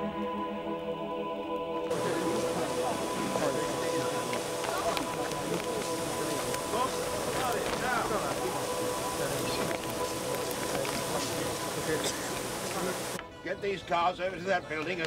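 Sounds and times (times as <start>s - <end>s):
indistinct voices: 0.0s - 13.8s
fire burning: 1.8s - 13.2s
constant droning hum: 1.9s - 13.2s.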